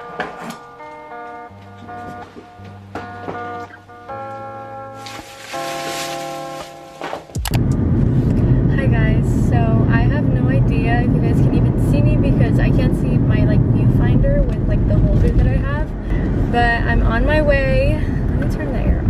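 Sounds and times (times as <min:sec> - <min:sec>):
car road and engine rumble: 0:07.2 - 0:19.0
woman talking: 0:08.7 - 0:19.0.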